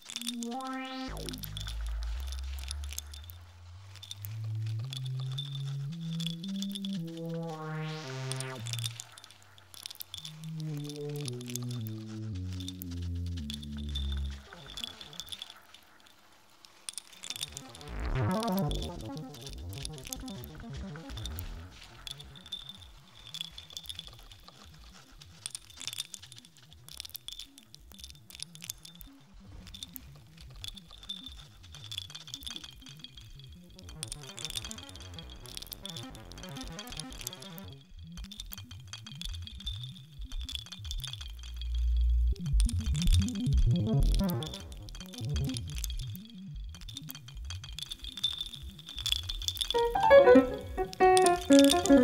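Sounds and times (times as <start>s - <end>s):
dense crackle of clicks: 0.0s - 49.8s
steady high tone: 49.8s - 52.0s.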